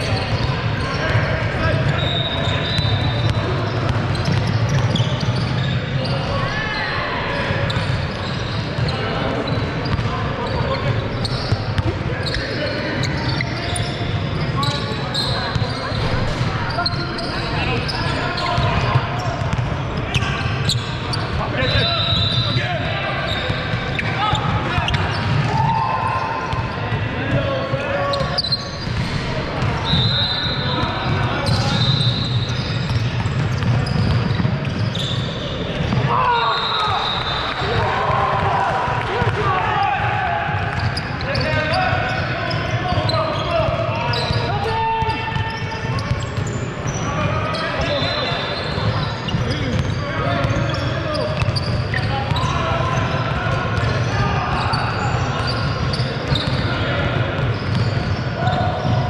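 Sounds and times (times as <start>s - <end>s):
sneakers squeaking: 0.0s - 39.4s, 40.4s - 59.0s
players shouting: 10.3s - 32.7s, 35.8s - 51.4s.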